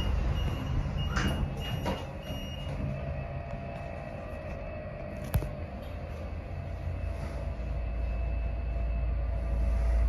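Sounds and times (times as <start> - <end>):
high electronic beep: 0.0 - 3.4
lift doors sliding shut: 0.0 - 4.0
lift motor hum: 0.0 - 10.0
low rumble: 0.0 - 10.0.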